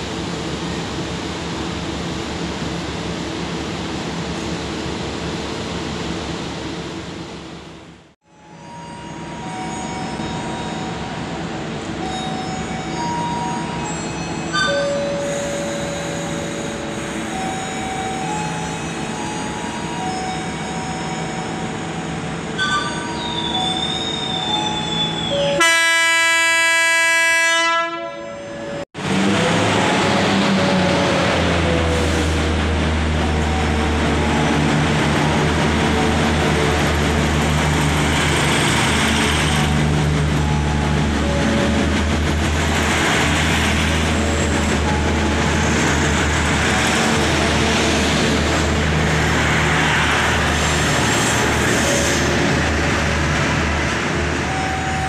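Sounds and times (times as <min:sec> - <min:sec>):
diesel train engine running: 0:00.0 - 0:26.7, 0:29.0 - 0:55.0
train horn blast: 0:25.6 - 0:28.5.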